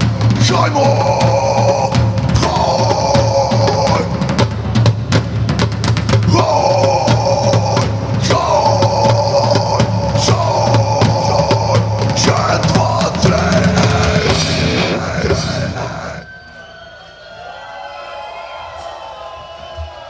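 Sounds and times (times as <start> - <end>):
drum kit: 0.0 - 16.2
live rock band playing: 7.1 - 16.2.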